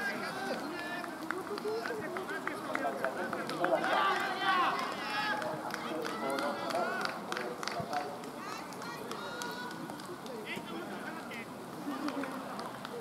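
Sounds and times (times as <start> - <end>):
men shouting: 3.8 - 5.4.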